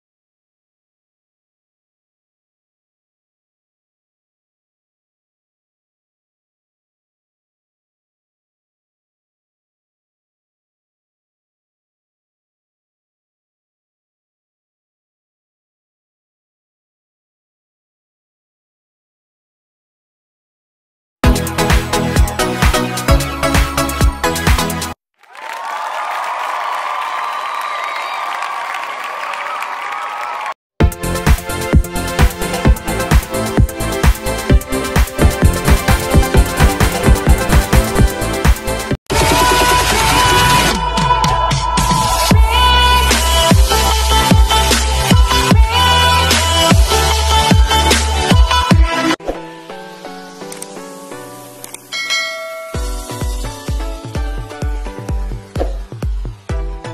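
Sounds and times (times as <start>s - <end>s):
bass beat: 21.2s - 25.0s, 30.8s - 49.2s, 52.8s - 56.9s
electronic background music: 21.3s - 25.0s, 30.8s - 40.8s, 42.3s - 56.9s
crowd applauding and cheering: 25.2s - 30.6s
bright bell-like chime: 51.9s - 53.5s.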